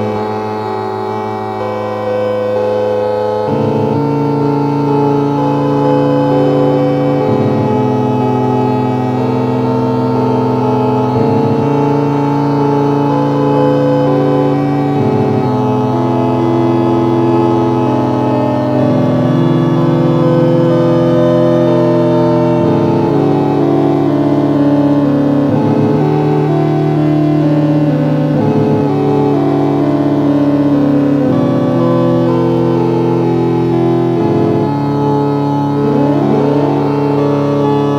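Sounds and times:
held synthesizer chords: 0.0s - 37.9s.

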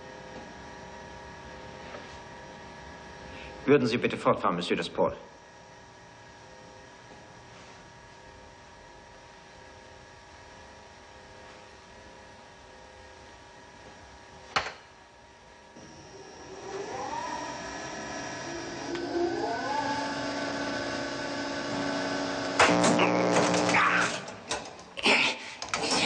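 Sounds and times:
electric whine rising in pitch: 15.7s - 24.6s
loud electric buzzing: 15.8s - 25.0s.

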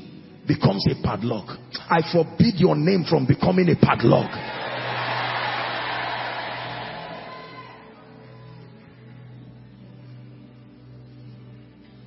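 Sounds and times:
crowd cheering and shouting: 4.3s - 8.6s.

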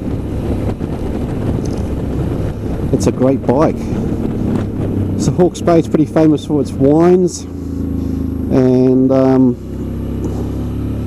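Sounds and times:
motorcycle engine cruising: 0.0s - 11.0s
wind rushing over microphone: 0.0s - 11.0s.

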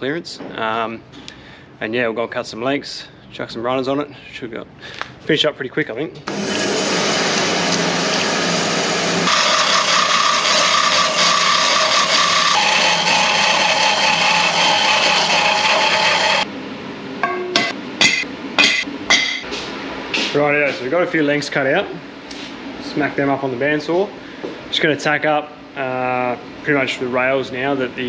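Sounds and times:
bandsaw cutting metal tube: 6.3s - 16.5s
sharp metallic knocks: 17.2s - 19.5s.

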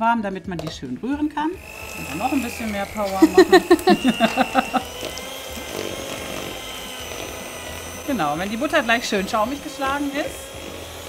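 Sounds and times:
electric hand mixer running: 1.2s - 11.0s.

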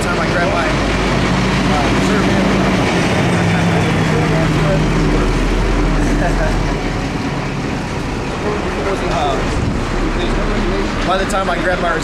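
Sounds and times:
diesel truck engine running: 0.0s - 12.0s
faint voices: 0.0s - 12.0s.

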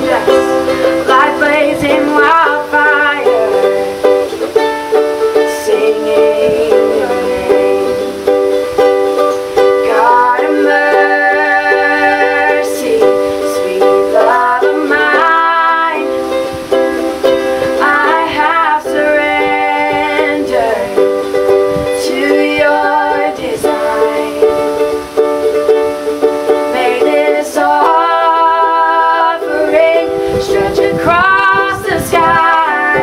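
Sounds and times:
women singing: 0.0s - 8.5s, 9.2s - 33.0s
ukulele playing chords: 0.0s - 33.0s.

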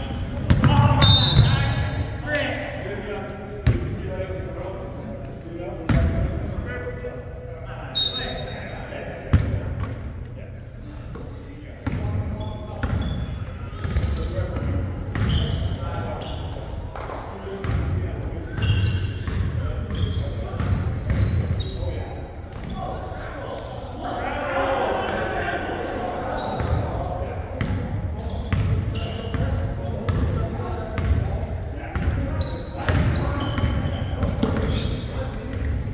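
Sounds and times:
sneakers squeaking on court: 0.0s - 2.5s, 7.8s - 10.1s, 11.0s - 23.0s, 26.0s - 35.9s
players calling out: 0.0s - 4.5s, 22.6s - 31.4s
basketball bouncing: 0.4s - 1.6s.

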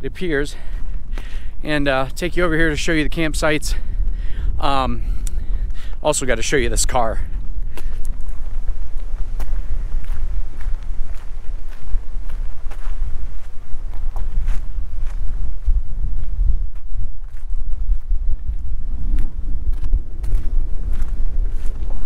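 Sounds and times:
footsteps on gravel: 0.0s - 22.0s
wind buffeting microphone: 0.0s - 22.0s.

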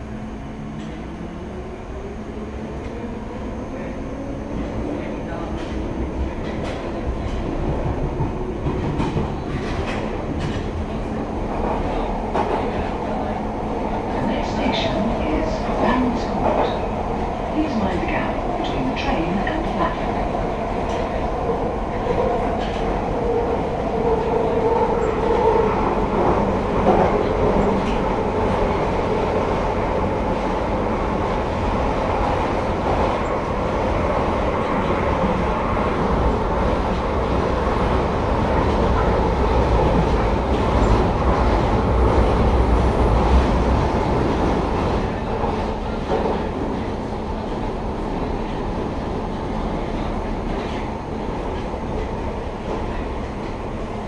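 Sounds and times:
train rumbling in tunnel: 0.0s - 54.0s.

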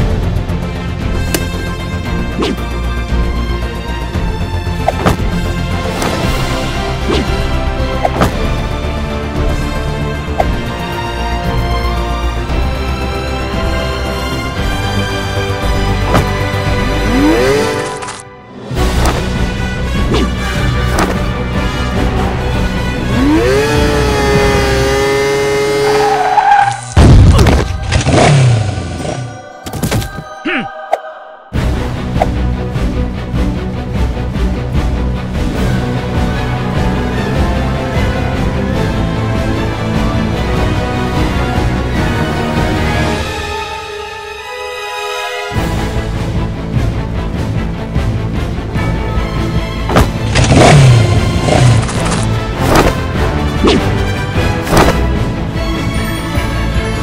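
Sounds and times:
theme music: 0.0s - 57.0s
motorbike engine revving: 16.0s - 18.2s, 21.8s - 27.0s, 49.9s - 54.0s.

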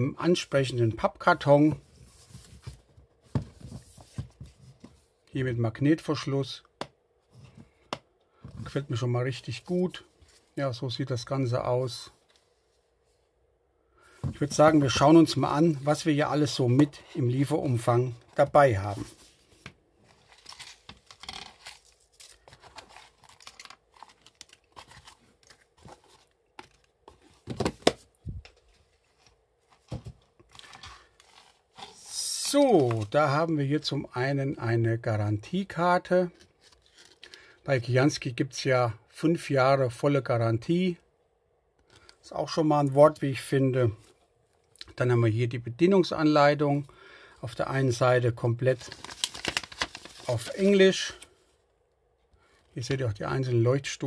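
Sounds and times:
cardboard box rustling: 19.0s - 31.9s.

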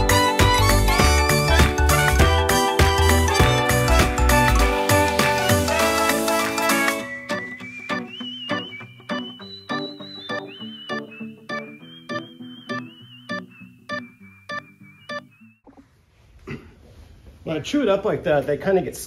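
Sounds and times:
background music with steady beat: 0.0s - 8.2s.

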